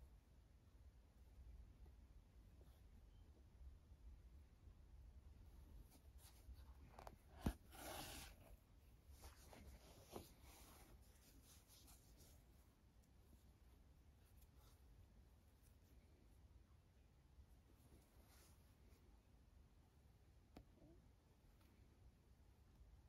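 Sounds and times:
faint rustling of yarn: 0.0 - 23.0.

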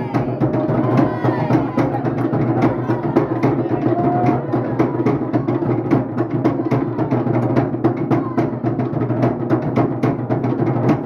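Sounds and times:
deep drum: 0.0 - 11.0
fast drumming: 0.0 - 11.0.

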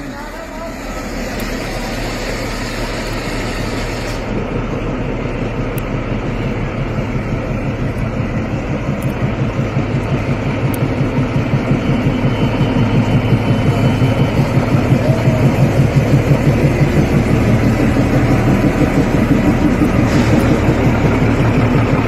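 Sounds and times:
diesel engine idling: 0.0 - 22.0.

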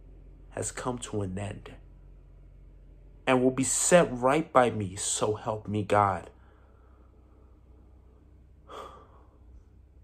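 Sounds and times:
man breathing in: 6.4 - 7.5, 8.6 - 9.6.

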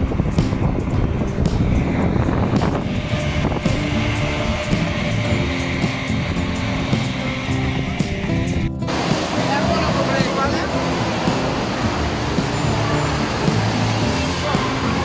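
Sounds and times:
steady rushing noise: 0.0 - 15.0
sustained low music chords: 0.0 - 15.0.

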